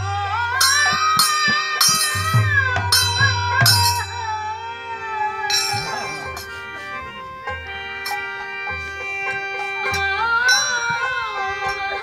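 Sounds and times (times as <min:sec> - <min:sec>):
wavering melodic line: 0:00.7 - 0:12.0
steady drone: 0:04.5 - 0:12.0.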